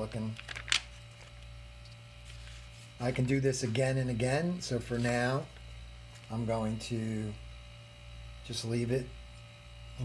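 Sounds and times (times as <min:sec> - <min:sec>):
low steady hum: 0:00.0 - 0:10.0
paper rustling: 0:00.4 - 0:01.4, 0:02.2 - 0:02.9.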